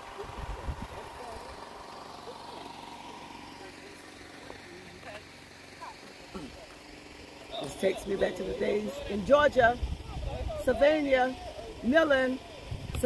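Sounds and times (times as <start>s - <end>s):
distant people talking: 0.0s - 13.0s
steady low hum: 0.0s - 13.0s.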